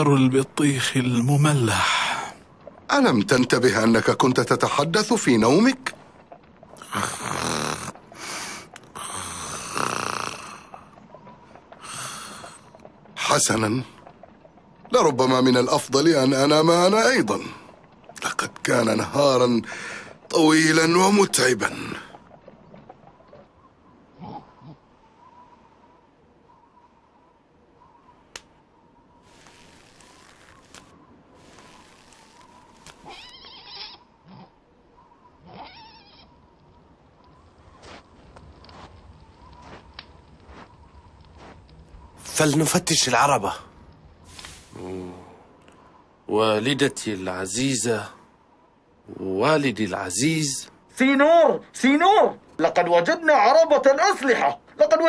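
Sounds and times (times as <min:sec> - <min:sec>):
breathy out-breath: 0:06.8 - 0:10.8, 0:11.8 - 0:12.6, 0:19.7 - 0:20.2
person snoring: 0:06.9 - 0:07.9, 0:09.0 - 0:10.7
faint rustling: 0:28.1 - 0:33.6.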